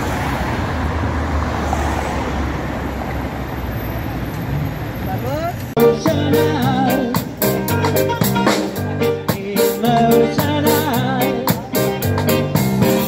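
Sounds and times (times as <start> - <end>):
road traffic rumble: 0.0 - 13.0
live band playing: 5.8 - 13.0.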